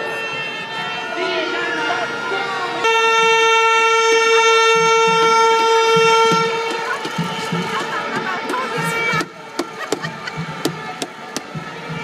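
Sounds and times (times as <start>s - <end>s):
loud horn blast: 0.0s - 9.4s
crowd voices: 0.0s - 12.0s.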